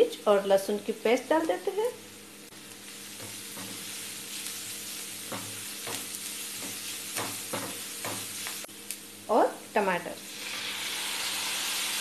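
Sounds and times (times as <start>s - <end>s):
food sizzling in oil: 0.0s - 12.0s
spatula scraping a pan: 2.9s - 8.7s.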